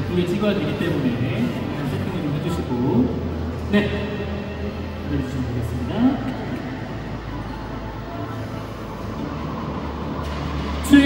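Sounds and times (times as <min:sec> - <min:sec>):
background music with deep drone: 0:00.0 - 0:11.0.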